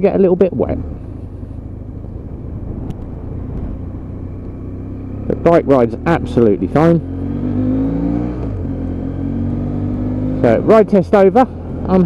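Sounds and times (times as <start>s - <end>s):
road noise: 0.0s - 12.0s
motorcycle engine running: 0.6s - 12.0s.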